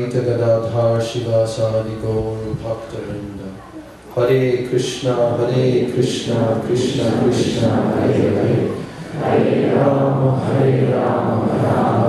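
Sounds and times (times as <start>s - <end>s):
man chanting into a microphone: 0.0s - 3.6s, 4.2s - 9.0s, 9.6s - 12.0s.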